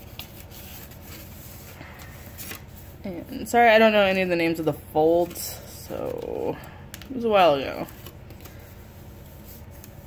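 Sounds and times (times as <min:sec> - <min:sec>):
paper rustling and crinkling: 0:00.0 - 0:03.1, 0:05.1 - 0:10.0
low background hum: 0:00.0 - 0:10.0.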